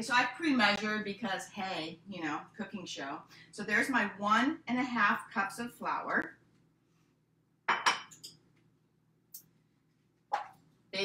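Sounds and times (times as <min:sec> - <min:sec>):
dishes clinking on countertop: 0:07.7 - 0:08.4.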